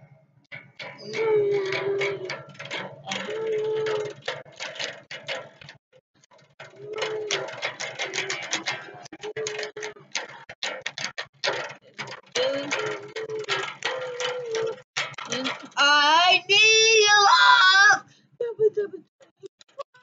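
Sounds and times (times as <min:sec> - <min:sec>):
person humming: 0:01.0 - 0:02.4, 0:12.4 - 0:15.6.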